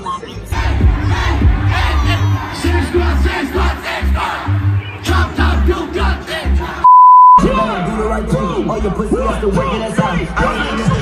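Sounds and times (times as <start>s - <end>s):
rapping voice: 0.0s - 4.4s, 7.4s - 11.0s
crowd noise: 0.0s - 11.0s
live hip-hop music: 0.0s - 11.0s
high censor bleep: 6.8s - 7.4s.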